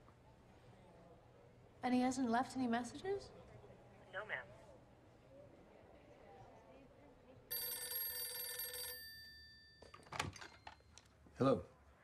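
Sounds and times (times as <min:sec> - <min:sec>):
telephone ringing: 0:07.5 - 0:10.9.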